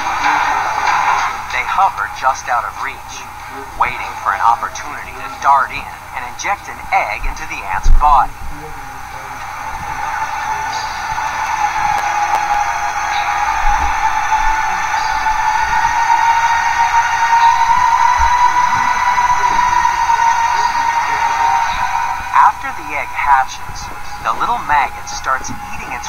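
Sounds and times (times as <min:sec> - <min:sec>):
high drone rising in pitch: 0:00.0 - 0:26.0.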